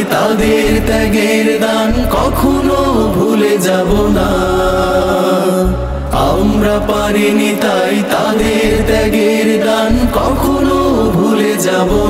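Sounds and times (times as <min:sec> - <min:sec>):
men singing: 0:00.0 - 0:12.0
deep bass drone: 0:00.4 - 0:01.2, 0:01.9 - 0:03.2, 0:03.9 - 0:07.3, 0:08.4 - 0:09.2, 0:09.9 - 0:11.2.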